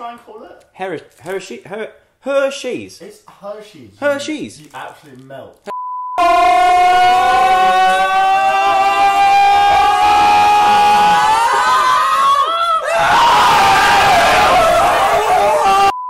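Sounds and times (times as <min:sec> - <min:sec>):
voices shouting at once: 0:06.2 - 0:16.0
young men screaming: 0:06.2 - 0:16.0.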